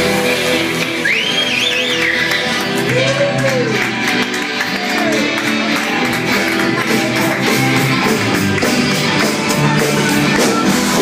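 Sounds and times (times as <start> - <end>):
guitar: 0.0 - 11.0
live band playing: 0.0 - 11.0.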